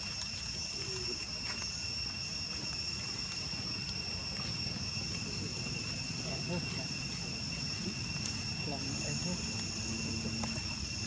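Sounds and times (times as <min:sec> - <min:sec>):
forest insects droning: 0:00.0 - 0:11.0.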